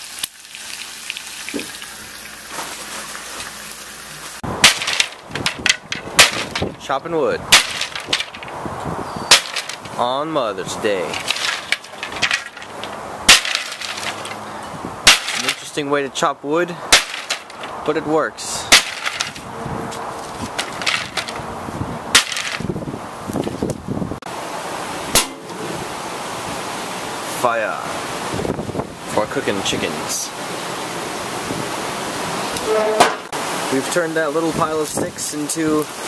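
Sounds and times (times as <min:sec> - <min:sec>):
axe chopping wooden boards: 0:04.6 - 0:06.7, 0:07.5 - 0:08.4, 0:09.3 - 0:09.8, 0:11.1 - 0:14.3, 0:15.0 - 0:15.7, 0:16.9 - 0:17.8, 0:18.7 - 0:19.4, 0:22.1 - 0:22.7, 0:25.2 - 0:25.4
wood cracking: 0:04.6 - 0:08.7, 0:09.3 - 0:10.2, 0:10.9 - 0:15.8, 0:16.9 - 0:17.9, 0:18.7 - 0:19.5, 0:20.2 - 0:21.5, 0:22.1 - 0:22.7.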